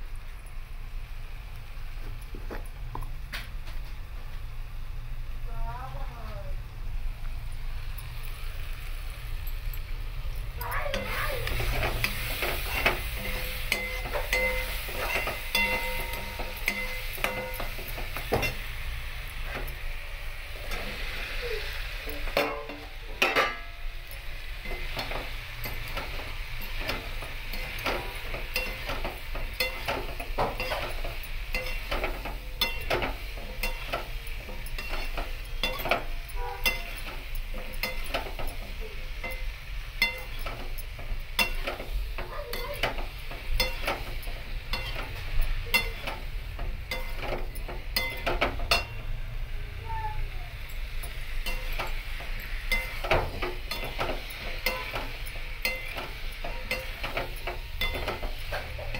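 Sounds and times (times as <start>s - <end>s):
food sizzling in oil: 0.0s - 58.9s
metal spoon scraping a pan: 10.6s - 19.9s, 20.5s - 49.1s, 50.6s - 58.9s
sharp metal clinks: 12.0s - 18.7s, 50.6s - 58.9s.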